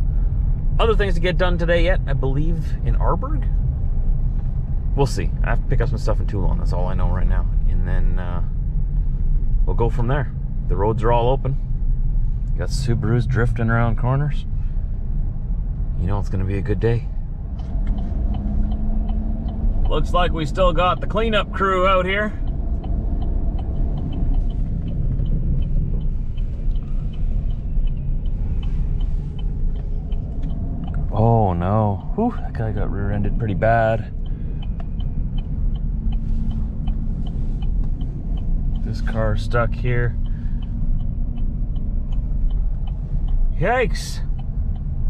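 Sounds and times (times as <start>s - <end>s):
vehicle engine and tyres rumbling: 0.0s - 45.0s
light ticks: 16.7s - 45.0s.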